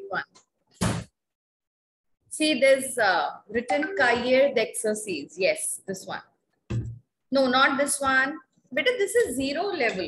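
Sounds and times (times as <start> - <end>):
woman's voice: 2.3 - 6.3, 7.3 - 10.0.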